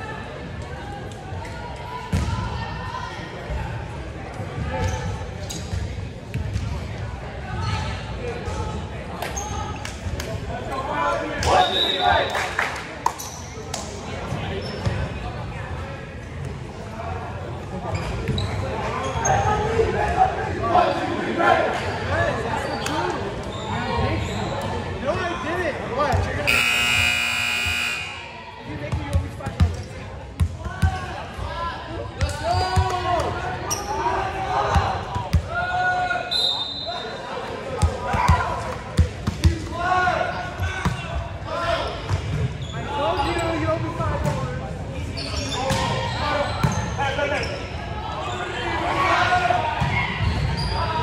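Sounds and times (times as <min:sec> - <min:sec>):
players' voices echoing: 0:13.8 - 0:36.2
electric scoreboard buzzer: 0:26.5 - 0:28.2.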